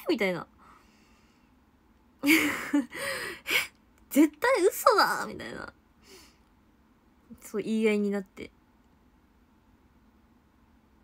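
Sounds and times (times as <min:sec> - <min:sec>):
woman laughing breathily: 0:02.2 - 0:03.7.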